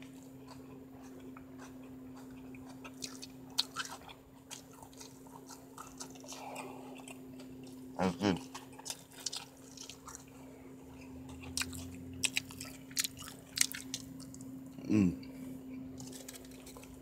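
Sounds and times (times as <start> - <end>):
chewing food: 0.0 - 17.0.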